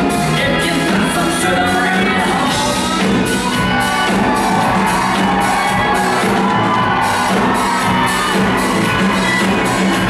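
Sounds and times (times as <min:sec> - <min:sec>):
live rock band playing: 0:00.0 - 0:10.0
regular drum beat: 0:00.0 - 0:10.0.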